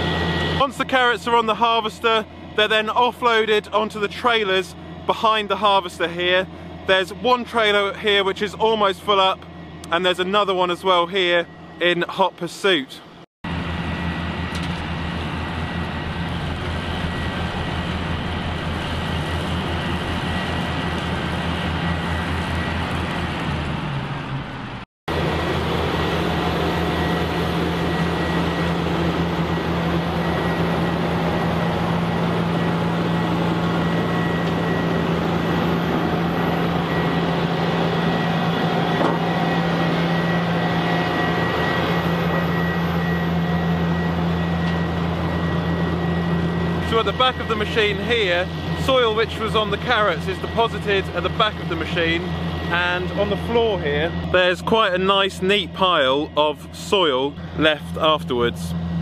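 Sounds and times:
heavy diesel machinery running: 0:00.0 - 0:59.0.

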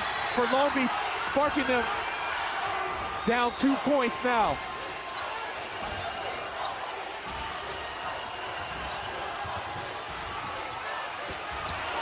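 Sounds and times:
arena crowd din: 0:00.0 - 0:12.0.

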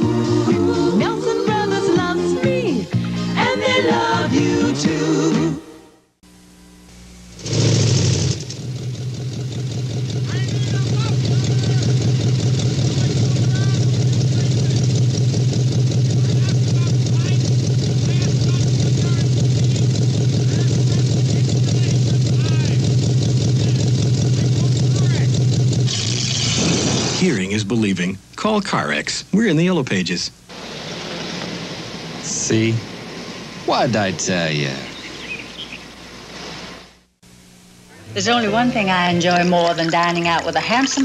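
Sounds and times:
car engine exhaust rumble: 0:07.1 - 0:27.3
faint man's voice: 0:33.7 - 0:34.9.

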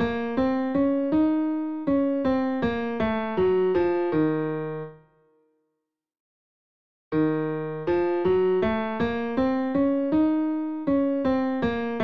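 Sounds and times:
piano playing a scale: 0:00.0 - 0:05.4, 0:07.1 - 0:12.0.

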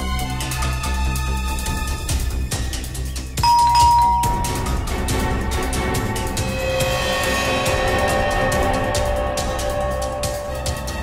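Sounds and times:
two-tone doorbell chime: 0:03.4 - 0:04.9
dramatic background music: 0:04.3 - 0:11.0.

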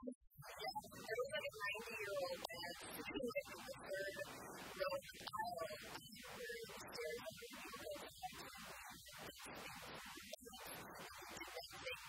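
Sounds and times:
woman speaking in short phrases: 0:00.0 - 0:08.4.

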